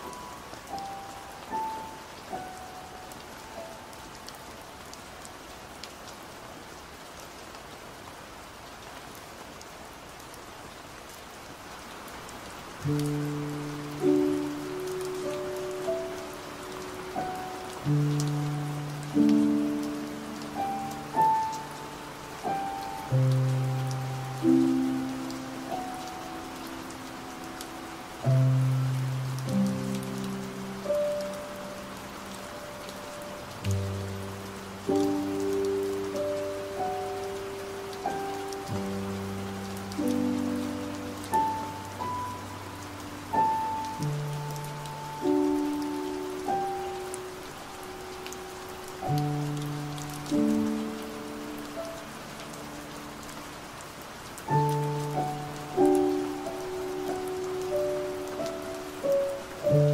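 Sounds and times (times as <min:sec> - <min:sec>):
soft piano chords: 0:00.0 - 0:06.1, 0:11.8 - 0:59.9
rain: 0:00.0 - 0:59.9
raindrop ticks: 0:12.8 - 0:34.1, 0:34.9 - 0:42.6, 0:48.2 - 0:52.8.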